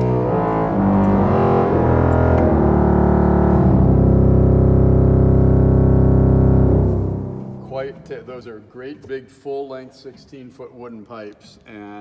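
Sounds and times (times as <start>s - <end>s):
pipe organ low reed notes: 0.0s - 8.4s.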